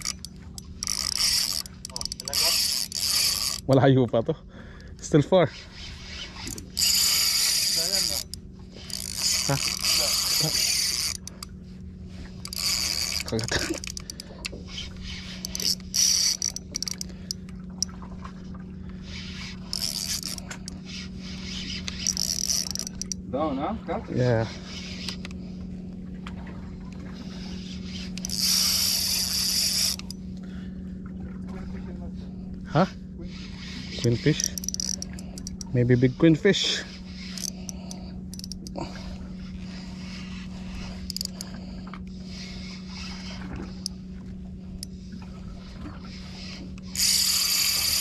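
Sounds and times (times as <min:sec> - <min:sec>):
fishing reel whirring and ratcheting: 0:00.0 - 0:04.0, 0:04.7 - 0:18.0, 0:18.8 - 0:25.5, 0:27.2 - 0:30.5, 0:32.7 - 0:48.0
steady low hum: 0:00.0 - 0:48.0.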